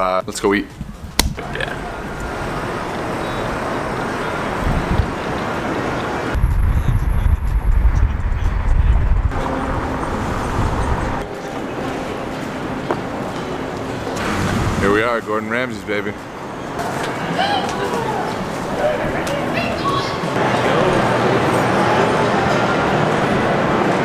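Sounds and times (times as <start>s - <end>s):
cars on a busy road: 0.9s - 15.0s, 16.2s - 24.0s
heavy deep rumble: 6.3s - 11.3s.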